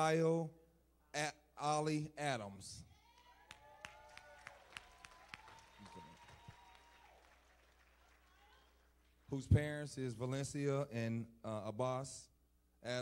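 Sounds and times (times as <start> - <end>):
faint scattered clapping: 3.2 - 9.3.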